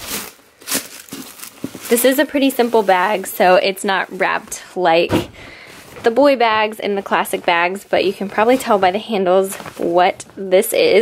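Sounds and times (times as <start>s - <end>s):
tissue paper rustling: 0.0s - 4.6s, 5.6s - 11.0s.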